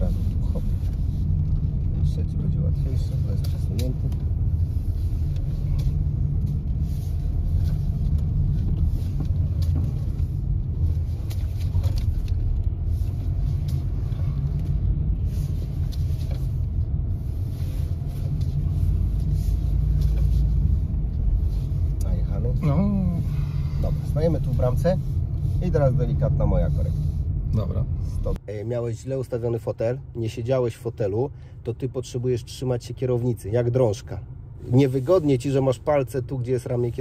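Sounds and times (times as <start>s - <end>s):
car engine and tyre rumble: 0.0s - 37.0s.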